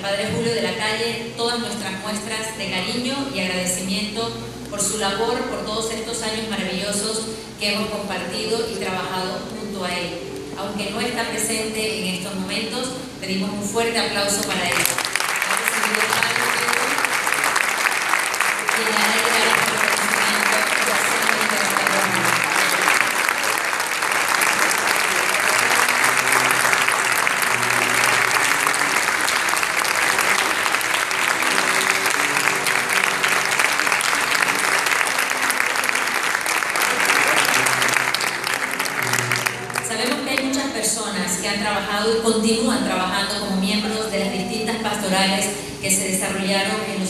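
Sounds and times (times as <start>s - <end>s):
faint music: 0.0s - 47.0s
audience applauding: 14.4s - 40.5s.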